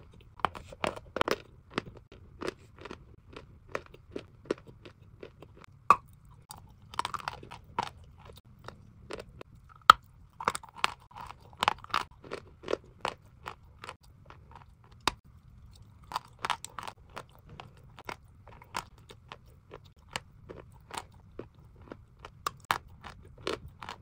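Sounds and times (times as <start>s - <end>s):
chalk crunching when chewed: 0.1s - 24.0s.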